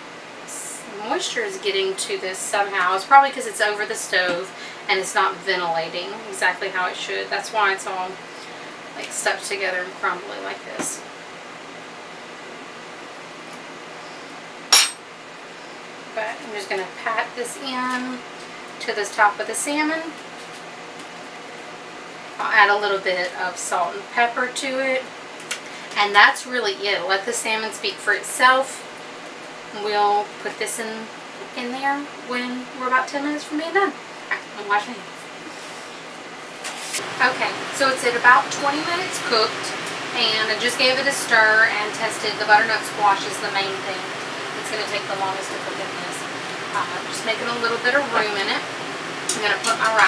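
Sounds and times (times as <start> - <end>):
cooker fan humming: 0.0 - 50.0.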